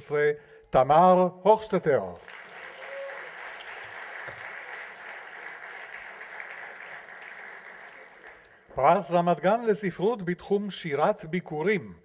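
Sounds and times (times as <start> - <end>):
audience applauding: 2.2 - 8.7.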